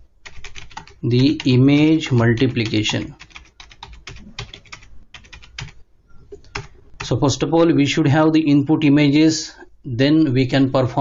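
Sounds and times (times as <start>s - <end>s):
computer keyboard typing: 0.2s - 1.5s, 2.4s - 7.1s.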